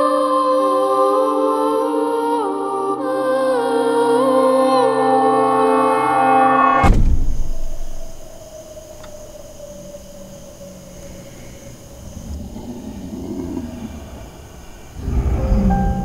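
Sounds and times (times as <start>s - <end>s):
dark low drone score: 5.0s - 16.0s
loud low boom: 6.8s - 8.0s.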